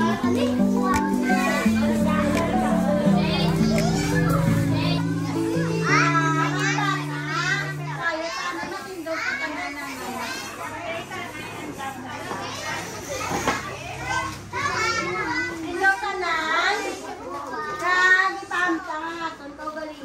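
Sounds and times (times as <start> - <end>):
children chattering and calling out: 0.0 - 20.0.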